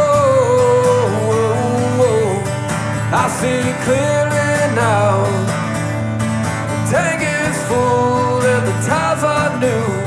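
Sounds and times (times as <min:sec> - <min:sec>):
man singing: 0:00.0 - 0:05.8, 0:06.7 - 0:10.0
strummed acoustic guitar: 0:00.0 - 0:10.0.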